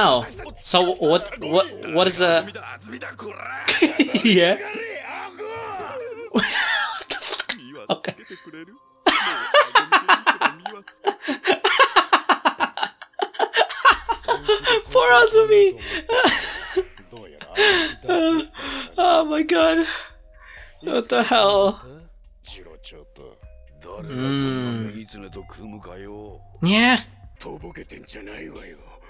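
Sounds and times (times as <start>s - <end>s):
anime dialogue: 0.0s - 4.8s, 13.9s - 16.5s, 17.4s - 22.1s, 23.4s - 28.2s
man laughing: 3.3s - 19.2s.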